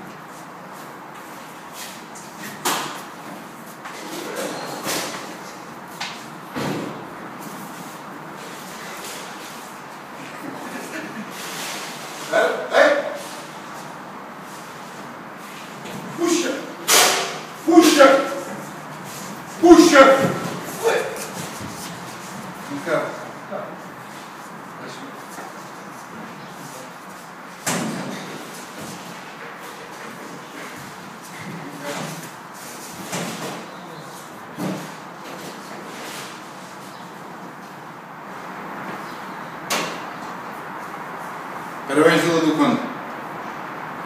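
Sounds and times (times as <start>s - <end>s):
man shouting in effort: 12.3s - 13.2s, 16.2s - 16.7s, 17.6s - 18.5s, 19.6s - 21.2s.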